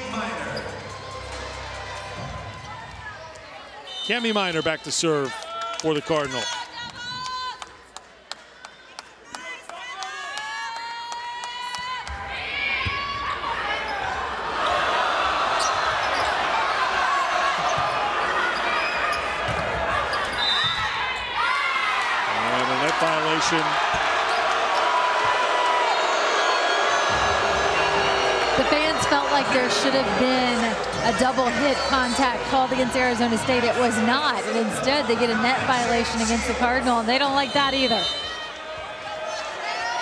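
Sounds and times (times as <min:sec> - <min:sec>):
crowd cheering: 0:00.0 - 0:40.0
sneaker squeaks: 0:17.6 - 0:21.0.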